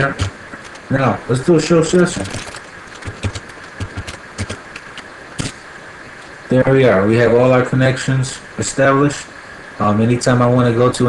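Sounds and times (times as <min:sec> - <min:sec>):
steady background hum: 0:00.0 - 0:11.0
computer keyboard keys clicking: 0:02.2 - 0:05.5.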